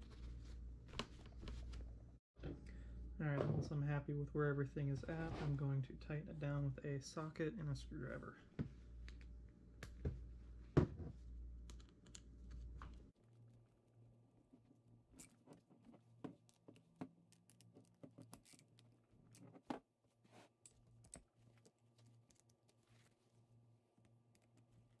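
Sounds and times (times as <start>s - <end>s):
faint steady hum: 0.0s - 16.3s.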